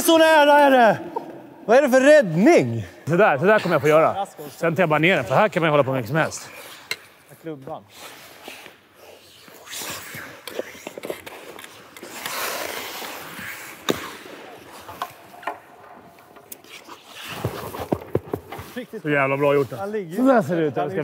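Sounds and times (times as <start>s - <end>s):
ice skates scraping on ice: 7.9s - 15.4s, 16.6s - 19.9s
hockey stick striking ball: 10.9s - 18.8s.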